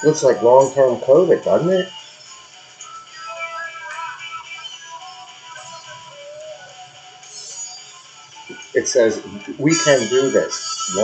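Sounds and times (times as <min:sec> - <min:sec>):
music with singing from television: 0:00.0 - 0:11.0.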